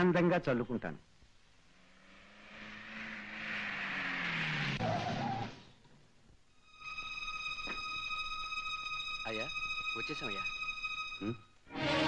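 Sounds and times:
car approaching: 1.4 - 6.2.

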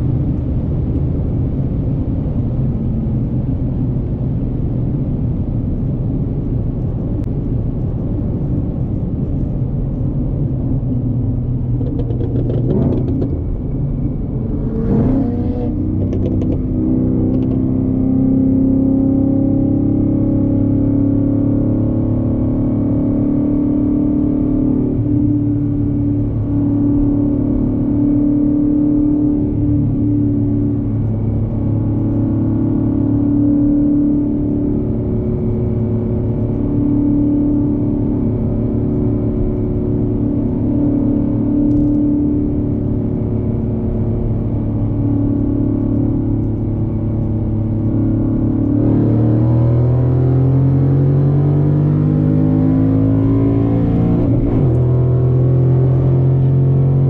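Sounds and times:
car engine drone from cabin: 0.0 - 57.0.

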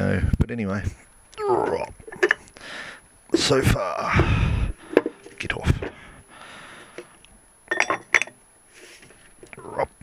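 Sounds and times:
quiet clicks and handling noise: 6.8 - 8.3
metal parts clinking: 7.7 - 8.4.

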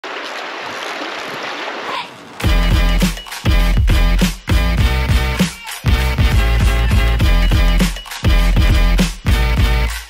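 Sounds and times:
river flowing over stones: 0.0 - 2.4.

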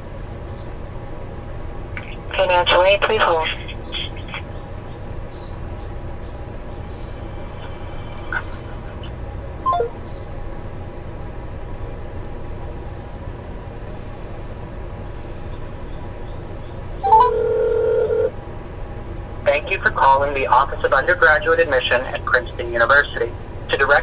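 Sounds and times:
phone line hum: 7.4 - 10.2, 17.0 - 18.4
falling blips: 9.6 - 10.0
telephone tone: 9.7 - 10.0, 17.0 - 18.4.

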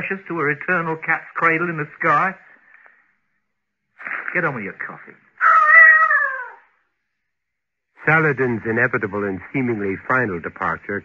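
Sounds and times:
cat meowing: 5.4 - 6.7.

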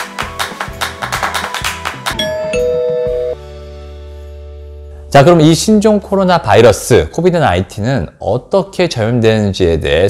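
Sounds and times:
quick percussive beats: 0.0 - 3.4
two-note ding-dong chime: 2.2 - 3.4.

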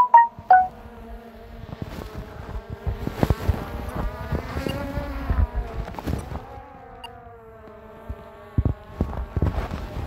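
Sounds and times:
drone propellers buzzing: 0.2 - 10.0.

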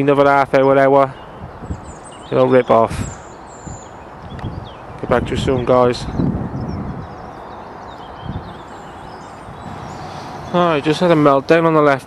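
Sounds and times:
faint birds chirping: 0.0 - 12.0
wind noise: 1.1 - 11.6.

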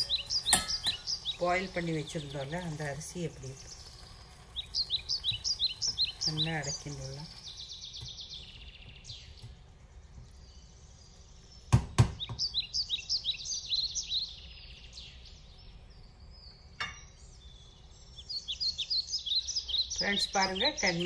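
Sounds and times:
birds chirping: 0.0 - 21.0.

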